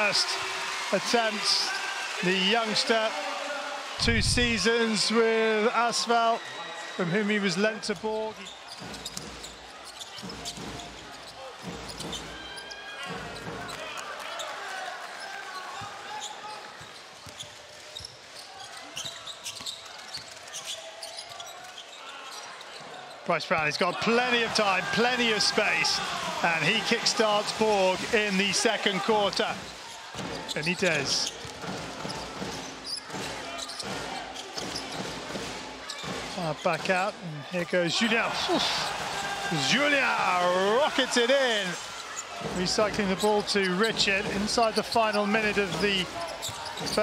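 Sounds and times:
crowd noise with voices: 0.0s - 47.0s
basketball bouncing on court: 8.7s - 12.4s, 31.2s - 36.4s, 45.6s - 47.0s.

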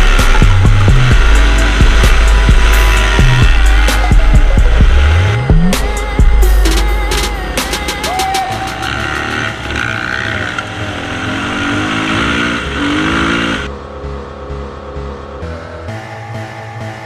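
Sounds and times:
dirt bike engine revving: 0.0s - 13.7s
background music: 0.0s - 17.0s.

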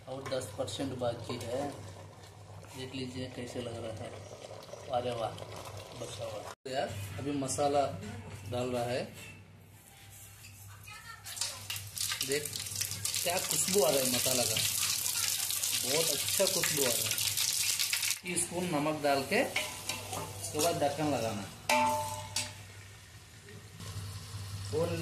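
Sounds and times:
spices sizzling in hot oil: 0.0s - 6.5s, 11.3s - 25.0s
ladle clinking against pot: 21.7s - 22.6s.

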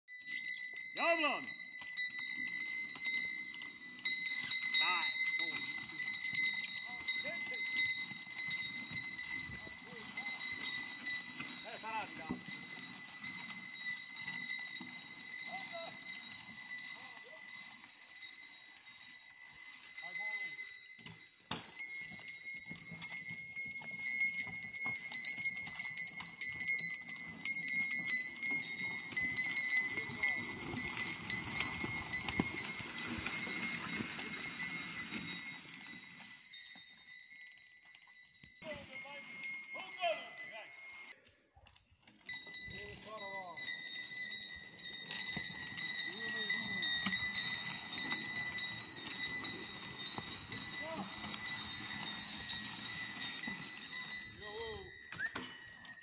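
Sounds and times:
hooves and dragging timber rumble: 0.1s - 56.0s
steady high ringing tone: 42.3s - 56.0s.

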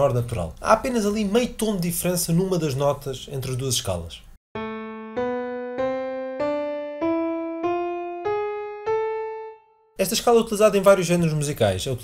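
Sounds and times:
piano playing a scale: 4.6s - 10.0s.

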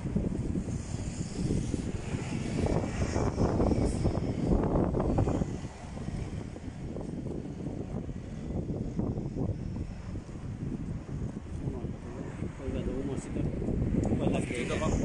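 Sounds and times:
rumble of passing cars: 0.0s - 15.0s.

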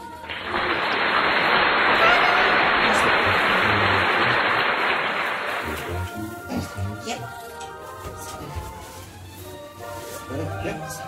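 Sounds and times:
background christmas music: 0.0s - 2.2s, 2.8s - 11.0s
fir branches rustling: 6.3s - 11.0s.

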